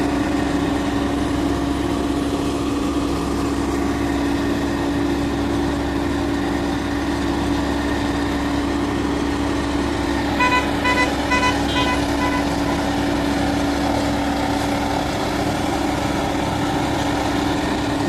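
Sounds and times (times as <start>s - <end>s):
diesel engine running: 0.0s - 18.0s
short high vehicle beeps: 10.4s - 12.9s.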